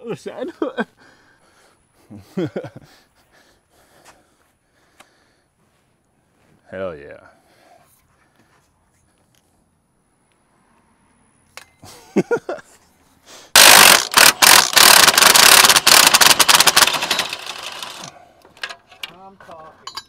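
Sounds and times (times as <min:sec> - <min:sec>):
impact wrench hammering: 0:13.6 - 0:18.8.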